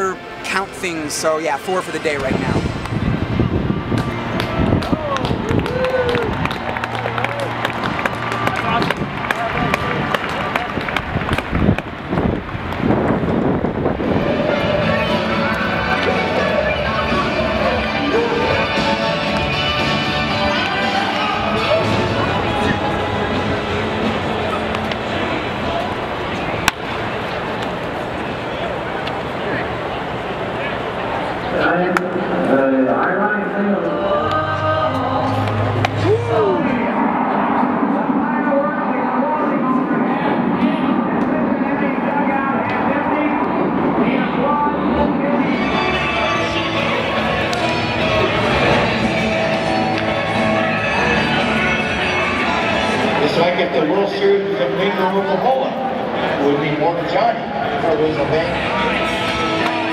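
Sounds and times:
voice over loudspeakers: 0:00.0 - 0:02.8, 0:31.4 - 0:47.4, 0:52.4 - 0:59.9
music over loudspeakers: 0:00.0 - 0:12.2, 0:12.8 - 0:25.8, 0:31.6 - 0:59.9.

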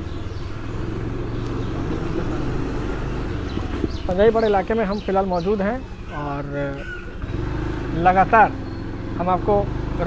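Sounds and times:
vehicle engine running steadily: 0:00.0 - 0:10.0.

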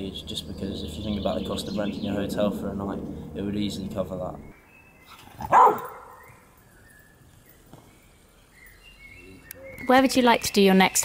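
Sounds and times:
small birds chirping faintly: 0:00.0 - 0:11.0.

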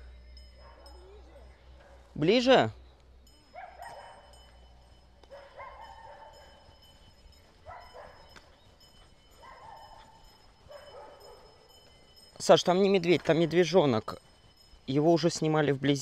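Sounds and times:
dog barking faintly: 0:03.5 - 0:04.4, 0:05.3 - 0:06.6, 0:07.7 - 0:08.4, 0:09.4 - 0:11.6.

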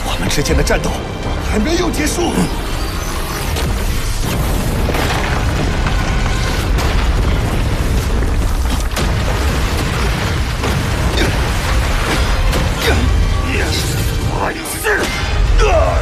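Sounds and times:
explosions: 0:03.3 - 0:14.3
deep booming impacts: 0:03.6 - 0:13.5.

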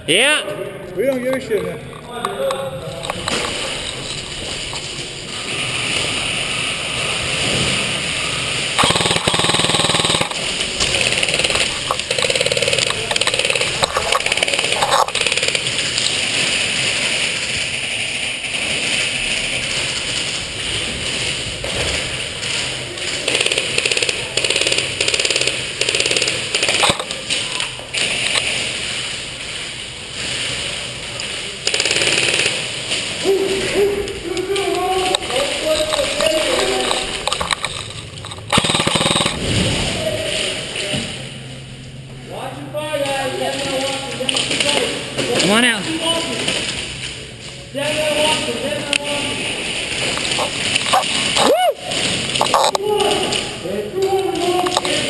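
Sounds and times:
skirmish guns firing: 0:08.8 - 0:19.8, 0:23.2 - 0:29.0, 0:31.6 - 0:33.2, 0:35.2 - 0:39.5.

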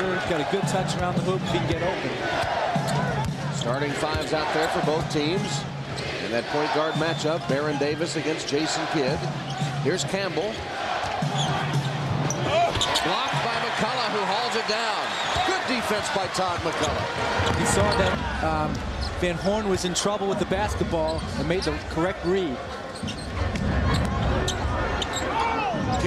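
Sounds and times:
crowd noise: 0:00.0 - 0:26.0
shoe squeaks on court: 0:11.3 - 0:13.2, 0:22.9 - 0:25.4.

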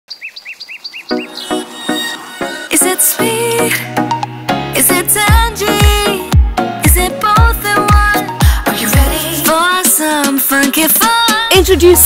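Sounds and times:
bird-like chirps: 0:00.1 - 0:02.6
music with punchy notes: 0:01.1 - 0:12.0.

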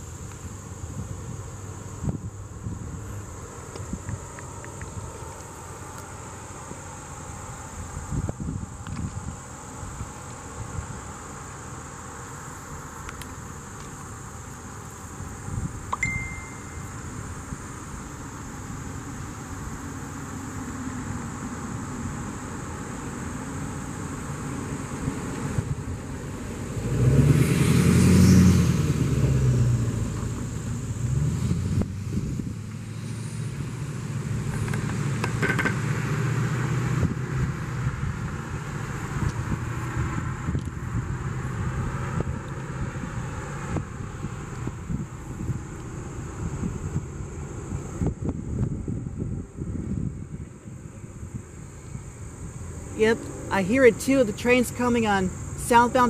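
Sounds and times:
faint high whine: 0:00.0 - 0:25.0
outdoor background noise: 0:00.0 - 0:56.0
vehicle passing by: 0:18.0 - 0:56.0.

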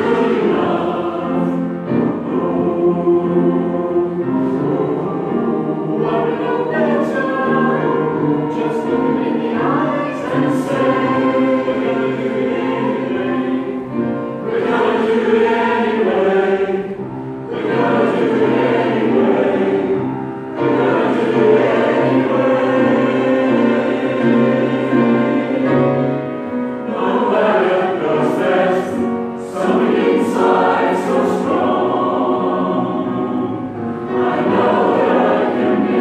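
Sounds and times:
choir singing in chords: 0:00.0 - 0:36.0.

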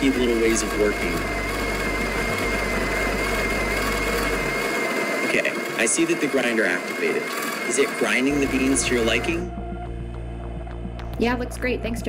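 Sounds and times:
coffee grinder grinding beans: 0:00.0 - 0:09.4.

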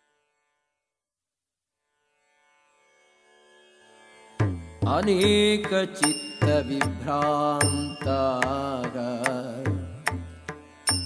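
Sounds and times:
tabla-like drum strokes: 0:04.4 - 0:11.0
melodic chant: 0:04.9 - 0:10.0.

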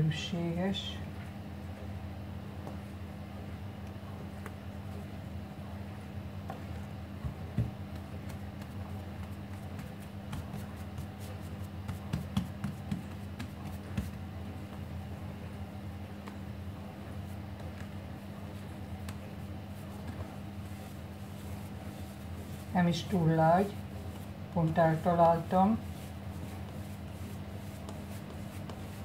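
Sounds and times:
steady low hum: 0:00.0 - 0:29.0
hands patting bread dough: 0:06.4 - 0:15.1, 0:16.1 - 0:29.0.

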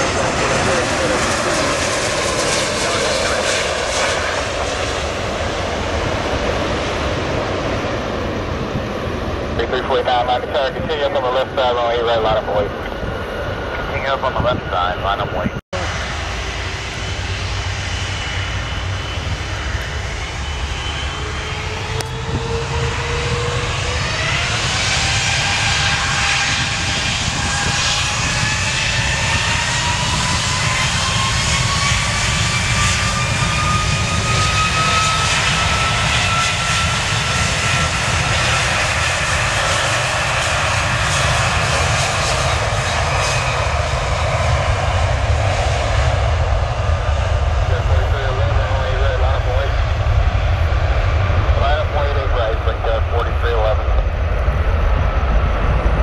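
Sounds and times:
jet engine whine rising: 0:00.0 - 0:56.0
low jet engine rumble: 0:00.0 - 0:56.0.

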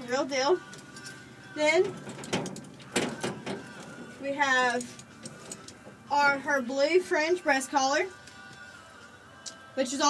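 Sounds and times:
horse tack knocking and rattling: 0:01.9 - 0:05.7.

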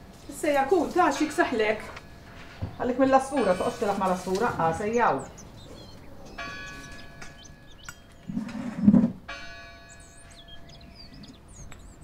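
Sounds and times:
birds chirping: 0:00.0 - 0:12.0
bell ringing: 0:06.2 - 0:08.2, 0:09.3 - 0:11.1.

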